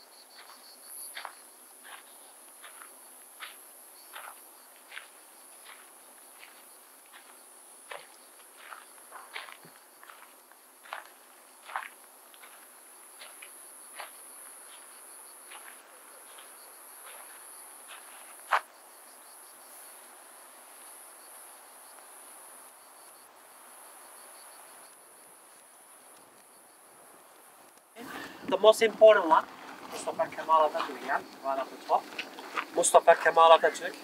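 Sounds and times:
insects droning: 0:00.0 - 0:34.0
footsteps: 0:00.3 - 0:18.7, 0:27.7 - 0:34.0.

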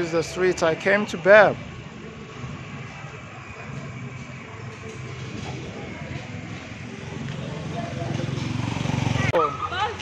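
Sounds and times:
motorbike engine running: 0:03.6 - 0:09.4.

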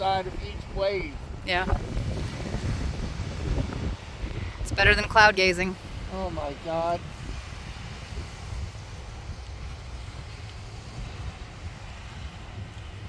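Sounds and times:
wind buffeting microphone: 0:00.0 - 0:13.0
surf breaking on beach: 0:01.5 - 0:13.0.

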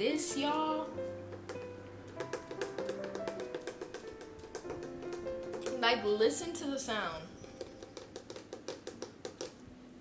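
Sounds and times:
fingers tapping on wooden board: 0:00.5 - 0:06.0, 0:07.4 - 0:09.6.

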